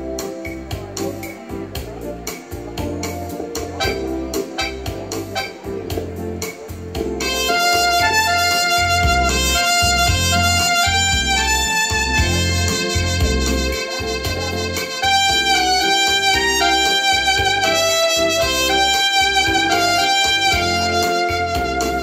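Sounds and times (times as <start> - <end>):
bass line: 0.0 - 22.0
electronic keyboard: 0.0 - 22.0
lead melody of held notes: 0.0 - 22.0
drum beat: 1.8 - 22.0.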